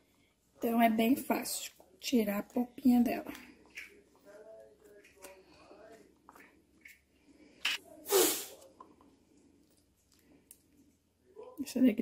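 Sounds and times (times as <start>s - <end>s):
sharp hiss: 8.1s - 8.6s.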